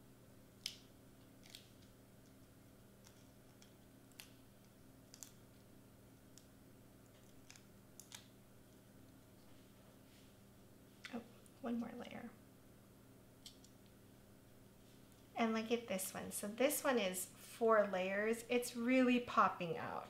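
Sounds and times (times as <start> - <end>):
low room hum: 0.0 - 20.0
light ticks and clicks of peeling foam: 0.6 - 9.6.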